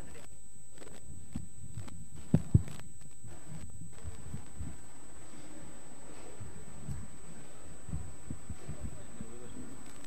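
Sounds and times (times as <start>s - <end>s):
steady hum with high tone: 0.0s - 10.0s
soft low thumps: 1.0s - 9.5s.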